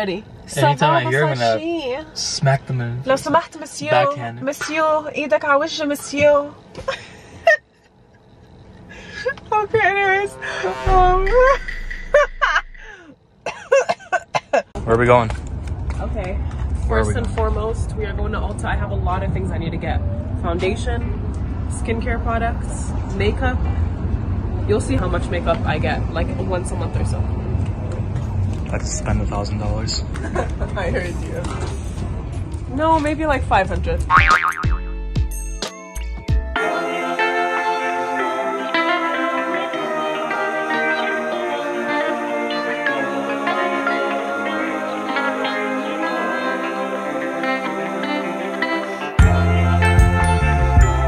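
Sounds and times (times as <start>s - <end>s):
woman laughing: 6.8s - 7.7s, 11.3s - 14.7s
wobbling springy boing tone: 10.8s - 12.8s, 34.1s - 35.0s
woman coughing and clearing throat: 11.4s - 14.7s.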